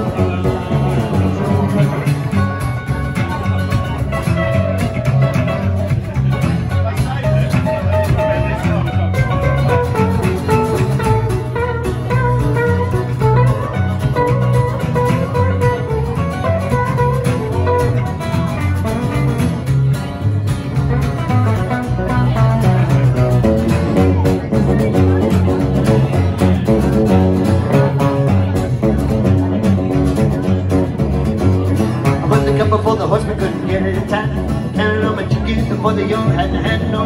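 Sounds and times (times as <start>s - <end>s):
electric guitar: 0.0s - 37.0s
plucked upright double bass: 0.0s - 37.0s
strummed acoustic guitar: 0.0s - 37.0s.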